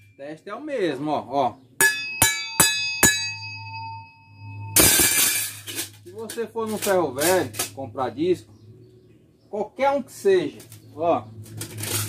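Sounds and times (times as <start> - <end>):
steel disc ringing when struck: 1.8 - 6.0.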